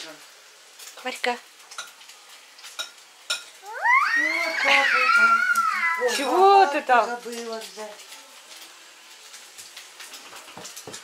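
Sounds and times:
meat sizzling in a frying pan: 0:00.0 - 0:11.0
toddler squealing: 0:03.6 - 0:06.4.

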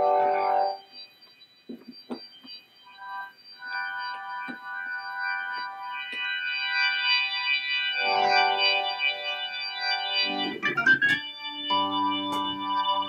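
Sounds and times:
organ holding a chord: 0:08.0 - 0:13.0.

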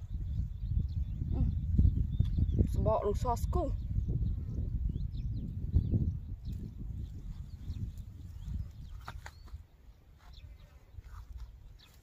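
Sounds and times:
rough low rumbling: 0:00.0 - 0:09.4
small birds chirping: 0:00.0 - 0:12.0.

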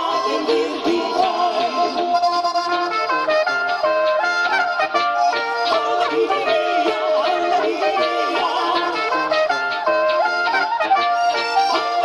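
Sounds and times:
women singing: 0:00.0 - 0:02.3, 0:05.6 - 0:09.4
folk band playing: 0:00.0 - 0:12.0.

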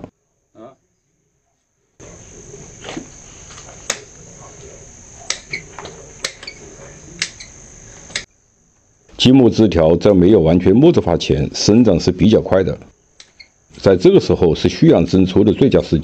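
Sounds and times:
high-pitched whine: 0:02.0 - 0:16.0
pruning shears snipping branches: 0:03.6 - 0:04.1.

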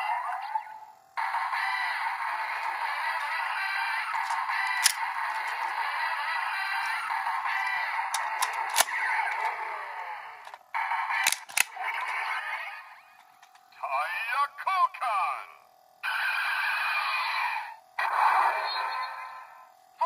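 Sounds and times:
toy electronic sound effects: 0:00.0 - 0:13.2, 0:16.0 - 0:19.7
sharp plastic clicks: 0:04.2 - 0:05.1, 0:08.0 - 0:09.6, 0:10.4 - 0:11.8
recorded voice calls from toy: 0:13.8 - 0:15.6.

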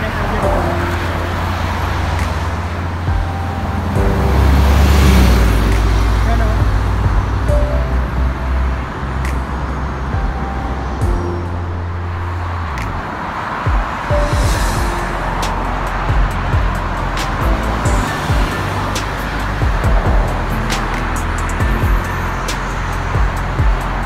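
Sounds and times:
highway traffic rushing past: 0:00.0 - 0:24.0.

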